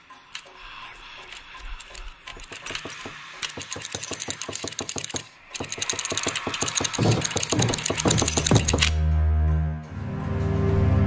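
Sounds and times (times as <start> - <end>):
rapid even ticking: 0.1 - 9.0.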